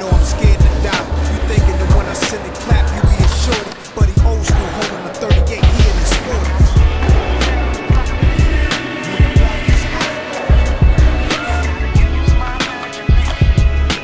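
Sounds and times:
hip-hop beat with heavy bass: 0.0 - 14.0
skateboard wheels rolling: 0.0 - 14.0
skateboard clacks: 0.1 - 7.6.

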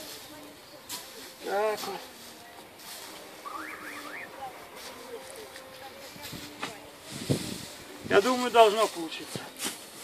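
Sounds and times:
pitchfork tossing straw: 0.0 - 10.0.

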